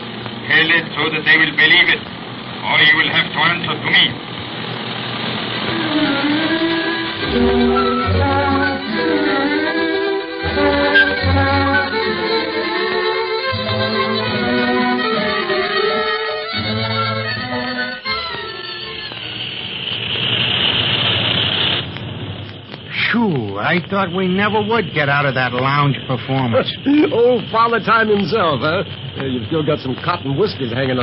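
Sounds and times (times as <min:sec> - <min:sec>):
airplane engine drone: 0:00.0 - 0:31.0
string music: 0:04.8 - 0:20.0.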